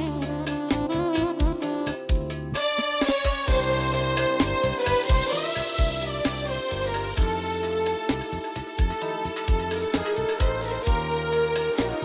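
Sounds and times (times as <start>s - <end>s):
kick drum beat and bass: 0.0s - 12.0s
synth lead melody: 0.0s - 12.0s.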